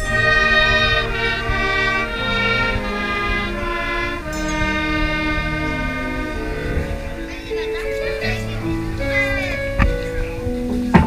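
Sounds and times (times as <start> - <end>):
wind band sustained chords: 0.0 - 11.0.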